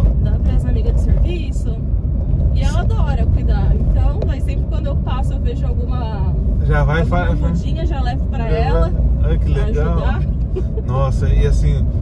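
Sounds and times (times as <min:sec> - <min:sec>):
people talking: 0:00.0 - 0:01.8, 0:02.6 - 0:11.8
car engine and tyres rumbling: 0:00.0 - 0:12.0.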